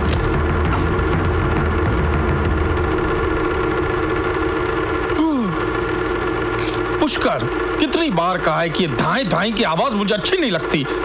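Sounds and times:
low rumble: 0:00.0 - 0:08.1
sustained synthesizer tones: 0:00.0 - 0:10.2.

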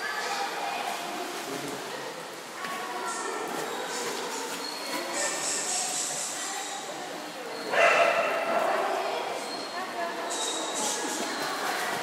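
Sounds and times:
water splashing: 0:00.0 - 0:07.6, 0:10.2 - 0:12.0.

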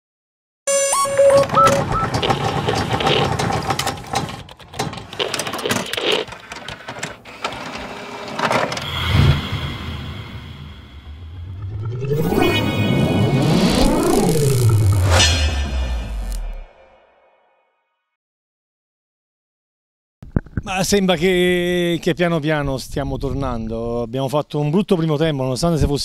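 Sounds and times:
deep rumble: 0:08.8 - 0:16.8
whooshes: 0:08.8 - 0:17.1
rising and falling sweeps: 0:08.8 - 0:17.2
sharp hits: 0:08.8 - 0:17.4.

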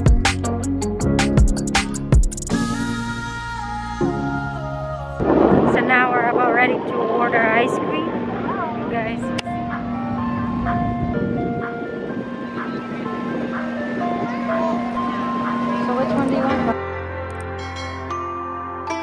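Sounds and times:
ice cream truck jingle: 0:07.6 - 0:19.0.

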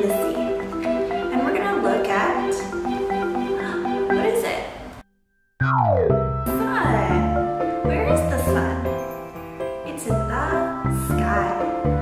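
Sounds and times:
background music with mallet tones: 0:00.0 - 0:12.0.

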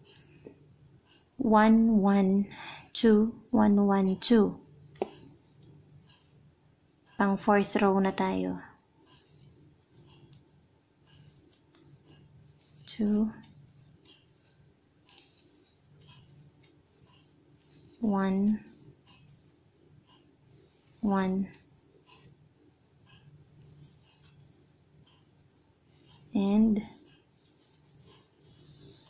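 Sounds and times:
faint high-pitched whine: 0:00.0 - 0:29.0
faint small ticks: 0:08.7 - 0:29.0.

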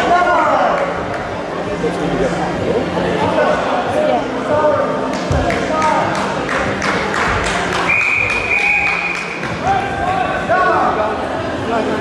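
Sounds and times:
voices calling out in a hall: 0:00.0 - 0:12.0.

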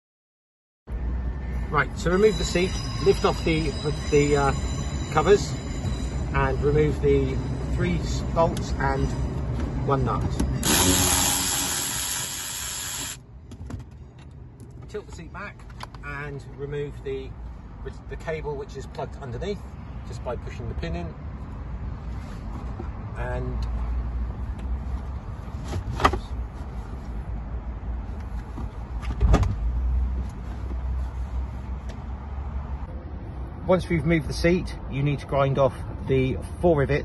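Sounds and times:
cordless ratchet running: 0:10.6 - 0:13.2.

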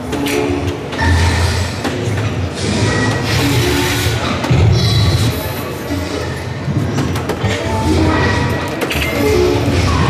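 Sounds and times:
din of busy hall: 0:00.0 - 0:10.0.

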